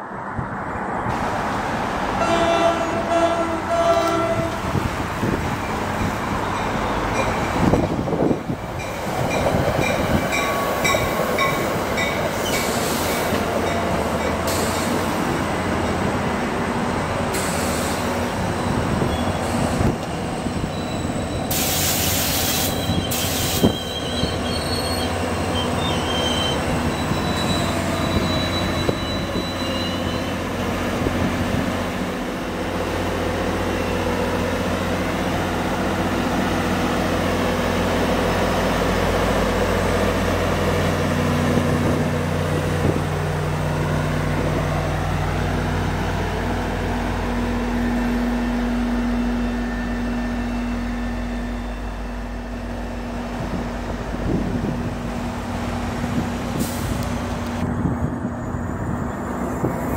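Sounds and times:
diesel locomotive engine drone: 0:00.0 - 0:59.9
crossing signal bells dinging: 0:08.7 - 0:12.8
train wheels squealing: 0:08.8 - 0:15.2, 0:17.6 - 0:30.5, 0:49.0 - 0:52.5.

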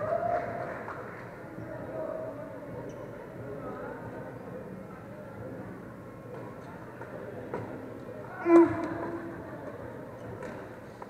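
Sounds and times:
sports hall background din: 0:00.0 - 0:11.0.

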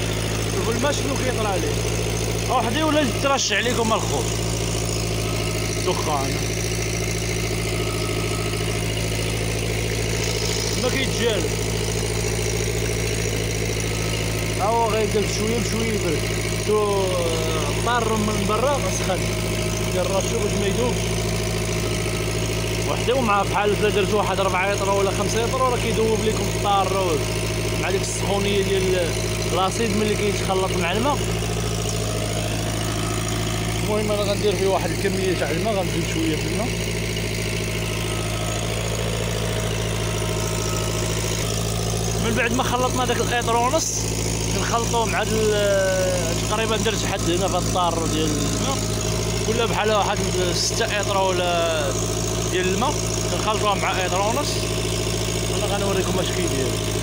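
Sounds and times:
small engine running: 0:00.0 - 0:57.0.

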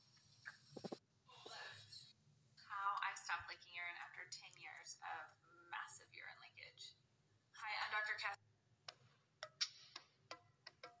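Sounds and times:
woman speaking: 0:02.6 - 0:07.0, 0:07.6 - 0:08.4.

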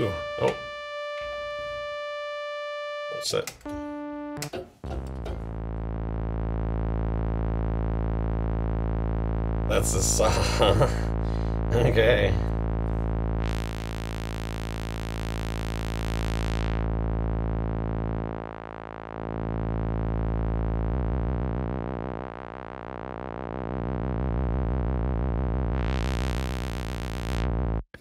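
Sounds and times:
person speaking: 0:00.0 - 0:00.7, 0:09.7 - 0:12.6
buzzy synthesizer note: 0:00.0 - 0:27.8.

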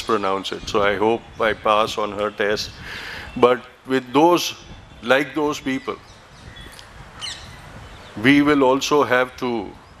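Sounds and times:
low background noise: 0:00.0 - 0:10.0
faint bird chirps: 0:04.5 - 0:08.6.

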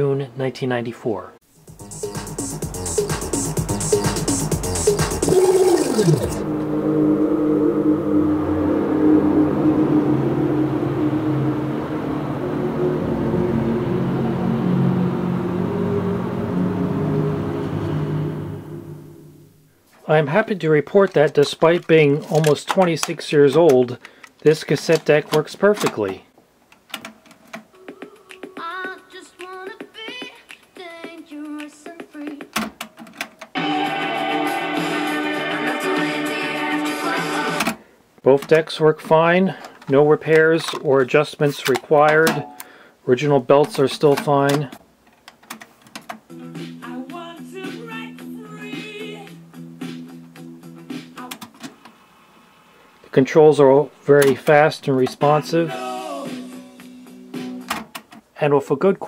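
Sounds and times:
music from cassette tape: 0:01.6 - 0:06.7, 0:27.0 - 0:37.8, 0:46.0 - 0:52.4, 0:55.3 - 0:58.1
sung melody over light accompaniment: 0:33.6 - 0:37.6
fuller piece of music: 0:33.6 - 0:37.7.

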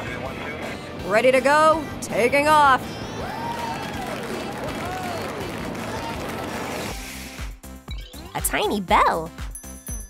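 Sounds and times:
faint voices whooping: 0:03.0 - 0:06.5.

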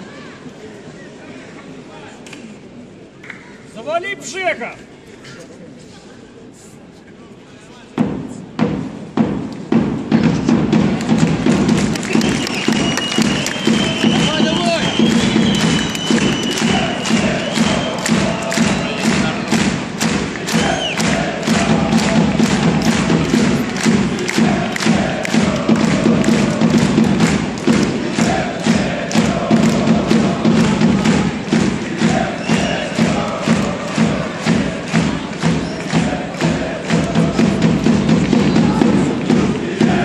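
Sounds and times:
crowd voices: 0:00.0 - 0:40.0
rhythmic thumping: 0:08.0 - 0:40.0.

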